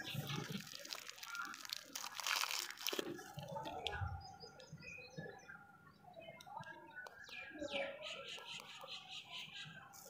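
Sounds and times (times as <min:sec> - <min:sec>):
wrapper crinkling: 0:00.1 - 0:03.5.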